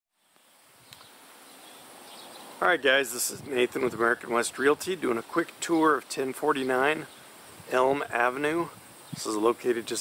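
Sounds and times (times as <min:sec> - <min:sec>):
low even hiss: 0:00.2 - 0:10.0.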